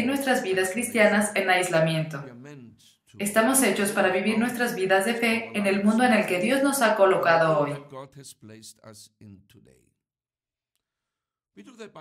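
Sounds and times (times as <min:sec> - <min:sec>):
person speaking: 0:00.0 - 0:09.7.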